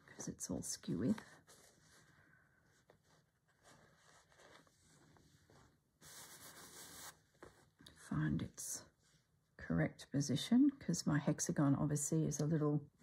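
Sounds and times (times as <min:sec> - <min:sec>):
fabric rustling and rubbing: 0:00.0 - 0:07.8.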